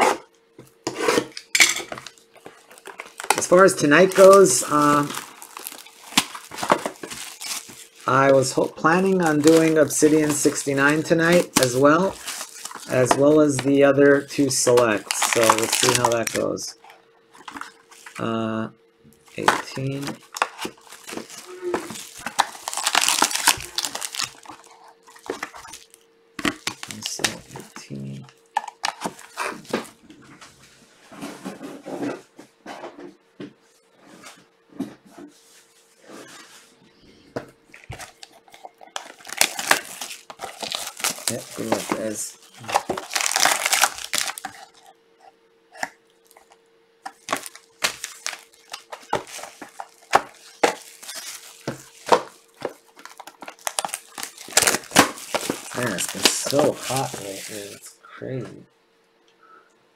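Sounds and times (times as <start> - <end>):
faint steady hum: 0.0 - 59.9
plastic wrap crinkling: 1.9 - 18.4, 19.3 - 30.0, 37.7 - 44.9, 45.8 - 57.9.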